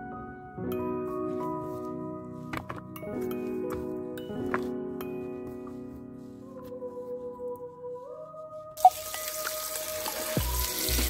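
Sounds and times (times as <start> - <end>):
background music: 0.0 - 11.0
tap water running into pot: 8.8 - 11.0.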